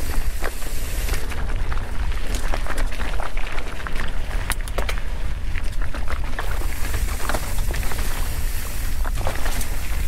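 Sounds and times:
wind and vibration rumble: 0:00.0 - 0:10.0.

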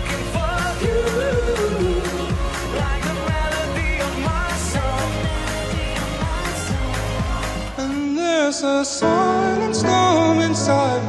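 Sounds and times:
steady kick drum beat: 0:00.0 - 0:07.8
male vocal singing: 0:00.0 - 0:11.0
upbeat pop music: 0:00.0 - 0:11.0.

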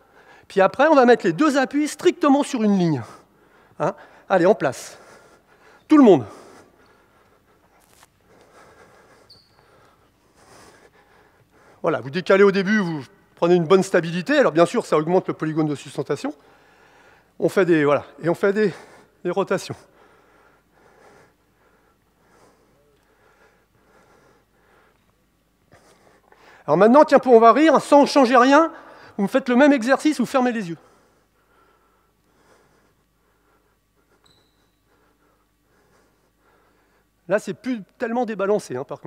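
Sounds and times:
soft breaths: 0:02.8 - 0:13.4, 0:16.4 - 0:26.7, 0:30.6 - 0:38.0
shoe squeak: 0:09.2 - 0:09.7, 0:34.2 - 0:34.9.

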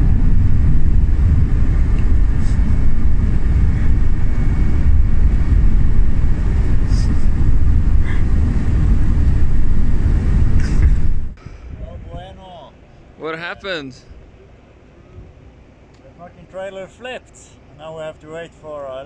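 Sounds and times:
vehicle rumble from inside cabin: 0:00.0 - 0:11.4.

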